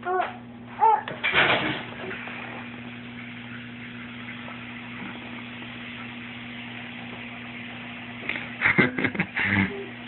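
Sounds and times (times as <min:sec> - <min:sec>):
appliance hum: 0:00.0 - 0:10.0.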